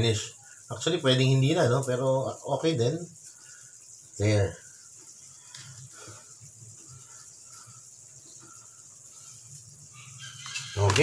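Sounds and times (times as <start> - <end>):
gas flame hiss: 0.0 - 11.0.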